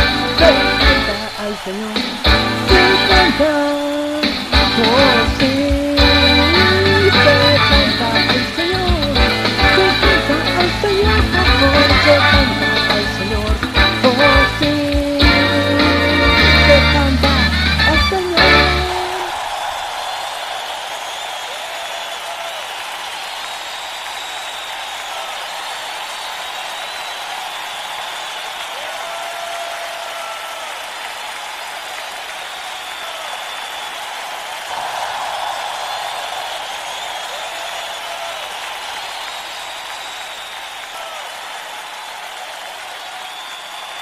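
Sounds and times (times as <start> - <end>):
crowd applauding: 0.0 - 44.0.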